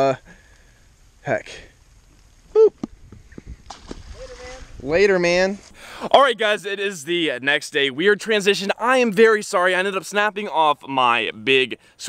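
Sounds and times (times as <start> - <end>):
man whooping: 2.5 - 2.8.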